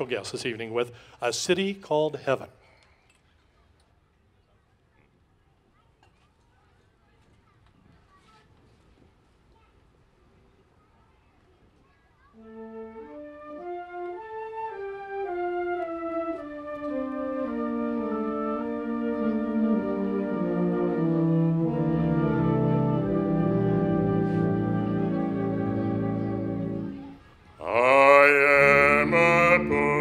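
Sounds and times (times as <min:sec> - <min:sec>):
concert band playing: 0:16.8 - 0:27.1.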